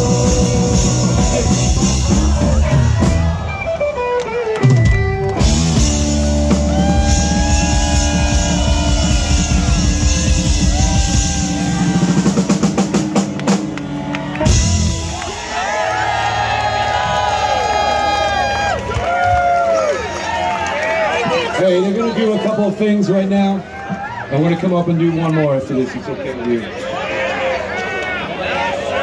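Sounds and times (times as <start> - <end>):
voices singing: 0.0 - 3.3
live rock band playing: 0.0 - 17.0.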